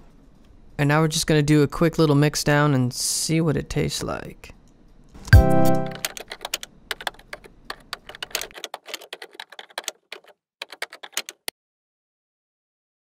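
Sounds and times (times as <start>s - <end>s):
typing on a computer keyboard: 5.6s - 11.5s.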